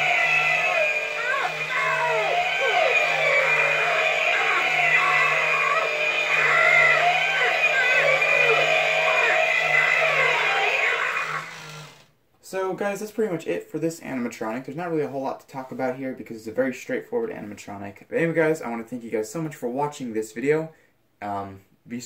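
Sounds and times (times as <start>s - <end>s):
steady pulsing hum: 0.0s - 11.3s
music soundtrack: 0.0s - 11.8s
screaming and bellowing voices: 0.0s - 12.0s.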